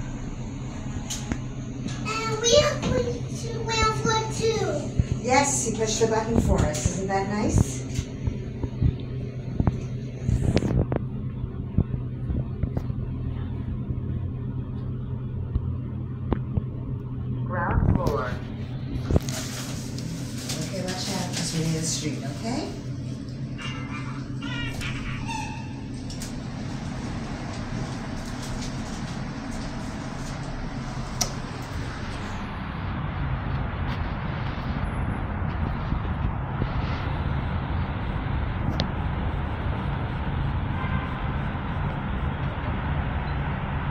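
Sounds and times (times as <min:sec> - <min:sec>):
elevator low hum: 0:00.0 - 0:43.9
street traffic rumble: 0:00.0 - 0:43.9.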